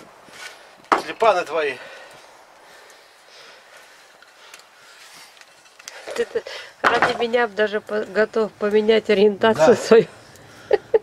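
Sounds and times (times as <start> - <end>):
man talking: 1.0 - 1.9.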